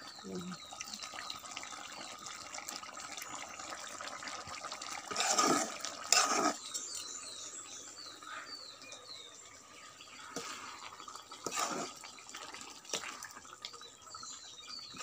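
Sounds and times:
curry bubbling in a wok: 0:00.0 - 0:15.0
wooden spatula sloshing stirs: 0:05.1 - 0:07.1, 0:10.2 - 0:13.4.

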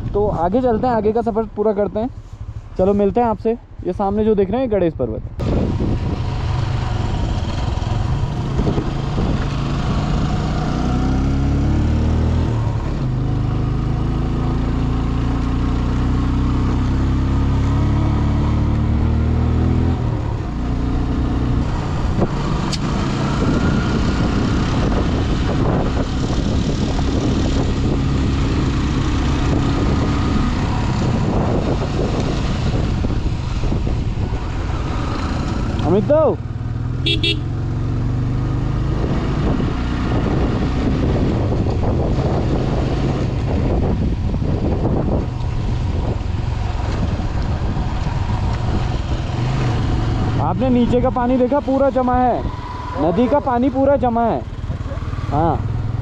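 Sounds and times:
motorcycle engine revving: 0:05.4 - 0:56.0.

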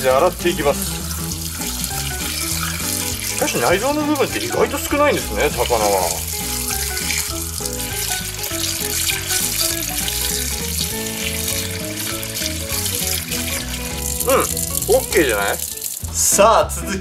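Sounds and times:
tap water running into sink: 0:00.0 - 0:16.2
background music: 0:00.0 - 0:17.0.

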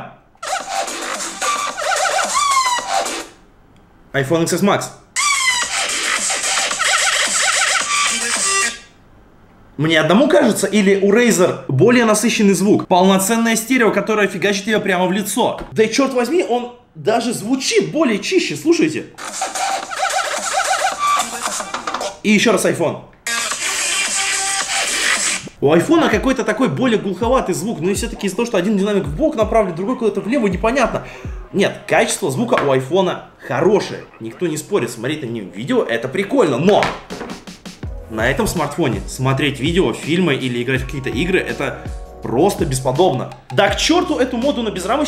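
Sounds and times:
music from phone speakers: 0:00.4 - 0:03.4, 0:05.2 - 0:08.8, 0:19.2 - 0:22.2, 0:23.3 - 0:25.5, 0:27.2 - 0:28.2, 0:29.0 - 0:31.6, 0:37.2 - 0:45.0
drum beat: 0:19.2 - 0:22.2, 0:24.0 - 0:26.4, 0:27.2 - 0:28.3, 0:29.0 - 0:29.7, 0:30.4 - 0:31.6, 0:36.8 - 0:44.9.

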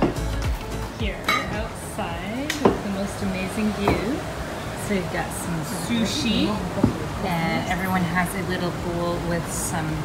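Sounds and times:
plates and cutlery clinking: 0:01.2 - 0:01.7.

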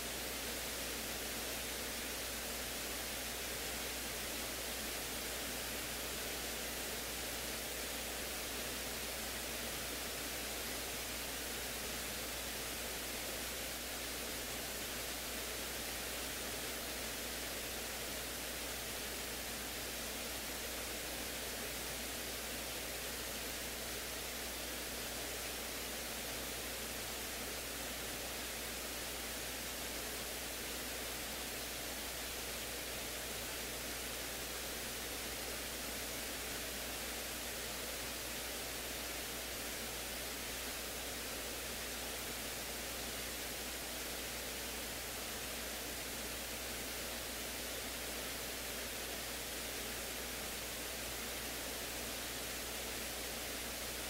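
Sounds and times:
static hiss: 0:00.0 - 0:54.0.

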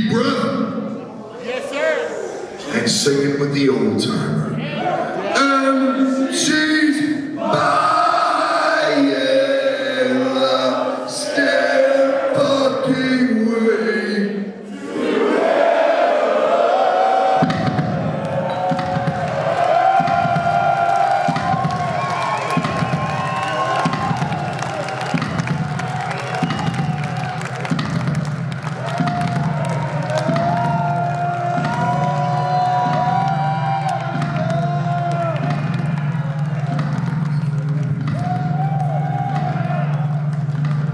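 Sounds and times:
crowd cheering: 0:14.7 - 0:40.9.

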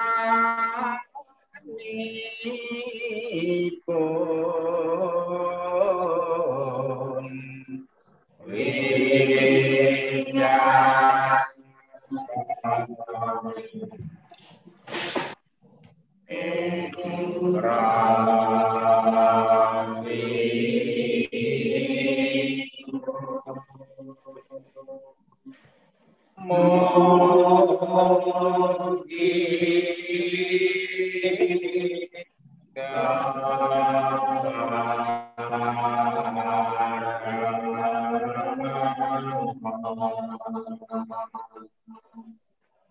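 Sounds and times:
group of voices chanting in unison: 0:03.2 - 0:14.0, 0:16.3 - 0:24.8, 0:26.4 - 0:41.7.

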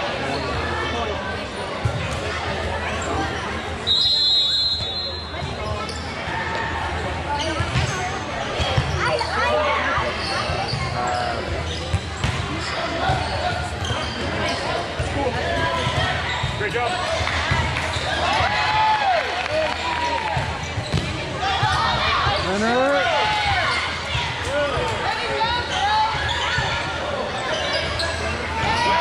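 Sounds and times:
spectators' voices: 0:00.0 - 0:29.0
referee's whistle: 0:03.9 - 0:05.4.

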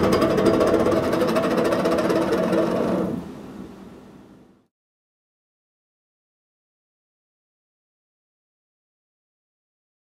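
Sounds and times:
metal-spinning lathe chatter: 0:00.0 - 0:03.2
steady ringing tones: 0:00.0 - 0:03.2.

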